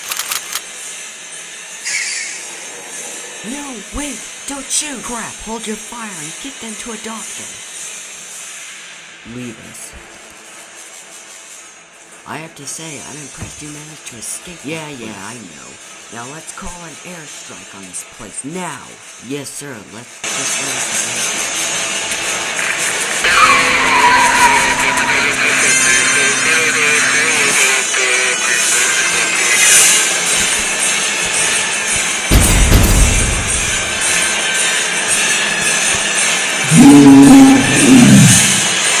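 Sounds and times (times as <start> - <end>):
falling bomb whistle: 23.2 - 27.5
loud pitched cry: 23.2 - 30.0, 36.6 - 39.0
deep explosion: 32.3 - 34.1.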